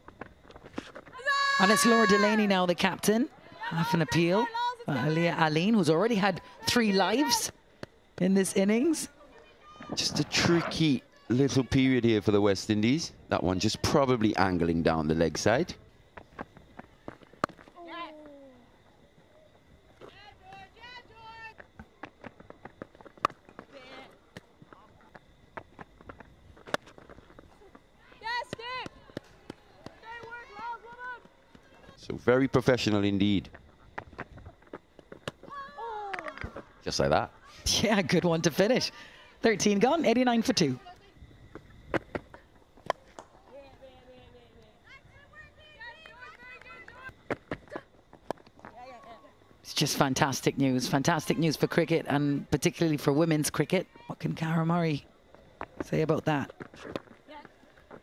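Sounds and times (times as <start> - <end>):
players calling and shouting: 0.0 - 25.8, 26.6 - 58.0.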